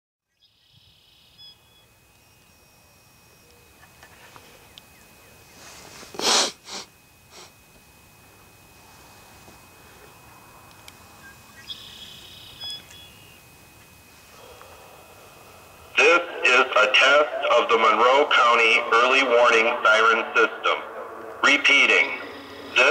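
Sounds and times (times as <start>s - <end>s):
electronic siren whine and hiss: 0.4s - 22.9s
sharp burst of noise: 6.1s - 7.5s, 14.2s - 22.9s.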